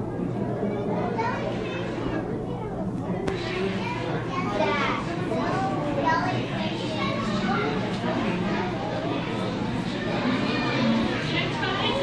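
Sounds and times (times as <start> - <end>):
babble of voices: 0.0 - 12.0.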